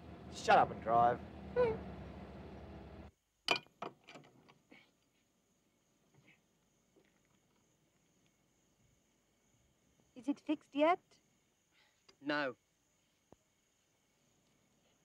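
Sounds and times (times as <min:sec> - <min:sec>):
car engine and road noise: 0:00.0 - 0:03.1
high insect drone: 0:04.6 - 0:15.0.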